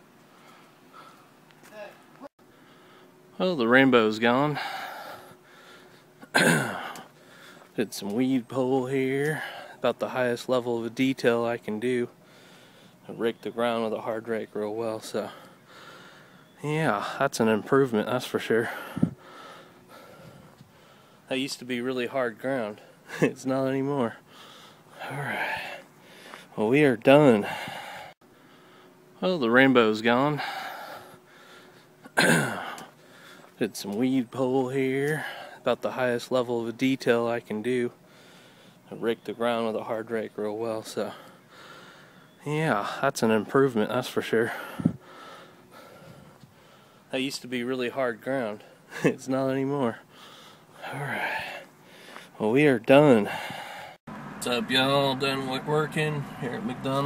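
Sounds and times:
faint background hiss: 0.0 - 57.0
person breathing faintly: 2.4 - 3.2, 4.5 - 6.2, 12.2 - 13.0, 15.2 - 17.2, 18.6 - 21.3, 24.2 - 26.6, 27.3 - 29.0, 38.0 - 38.9, 41.0 - 43.0, 44.4 - 47.1, 50.0 - 52.4, 53.2 - 54.0
soft breath: 18.6 - 21.3, 27.4 - 29.0, 44.5 - 47.1, 50.1 - 52.4, 53.3 - 54.0.

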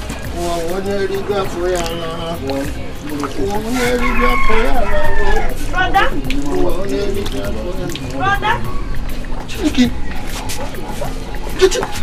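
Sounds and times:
music: 0.0 - 12.0
rooster crowing: 3.8 - 5.7.

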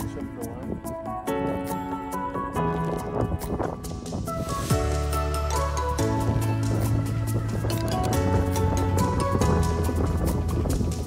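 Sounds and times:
held melodic notes: 0.0 - 11.0.

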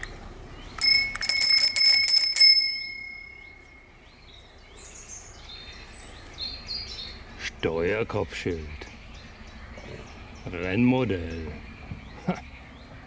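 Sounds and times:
bicycle bell ringing: 0.8 - 3.9.

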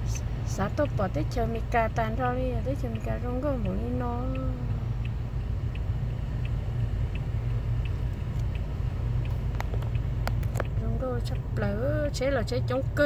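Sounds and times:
car engine idling: 0.0 - 13.0
faint ticking: 0.0 - 13.0
sharp clicks: 3.6 - 11.4.

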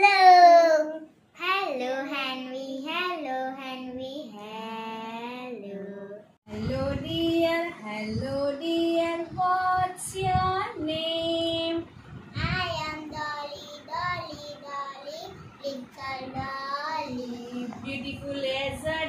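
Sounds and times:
girl singing: 0.7 - 7.6, 12.4 - 17.8
woman singing: 6.5 - 11.9.

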